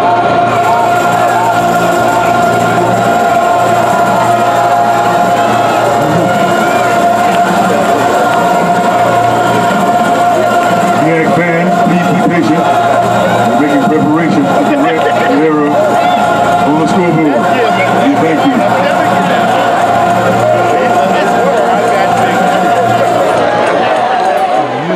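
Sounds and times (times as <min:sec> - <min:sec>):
crowd talking: 0:00.0 - 0:24.9.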